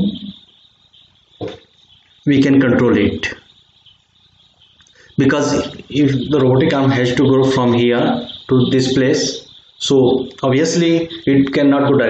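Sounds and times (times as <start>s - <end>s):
man lecturing: 2.3s - 3.4s, 5.1s - 12.0s.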